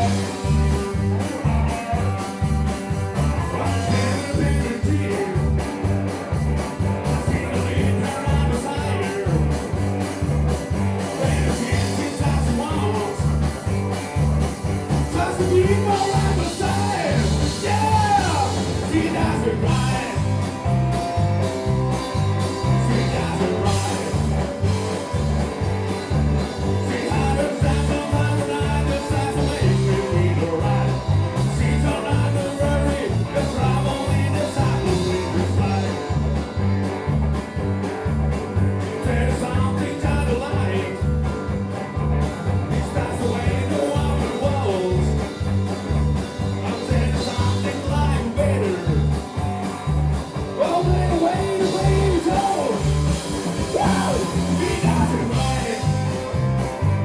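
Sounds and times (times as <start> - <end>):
bass guitar: 0.0 - 57.0
drums: 0.0 - 57.0
electric guitars: 0.0 - 57.0.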